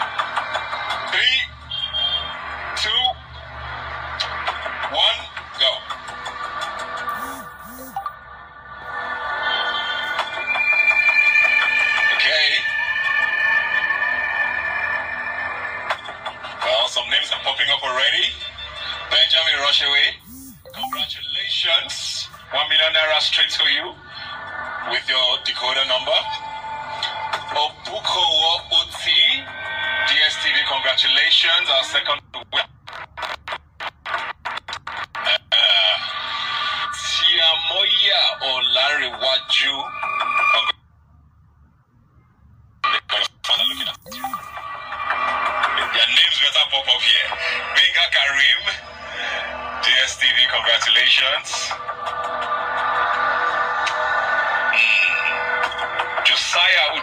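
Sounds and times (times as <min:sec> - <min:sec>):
broadcast music with voices: 0:00.0 - 0:40.8, 0:42.8 - 0:57.0.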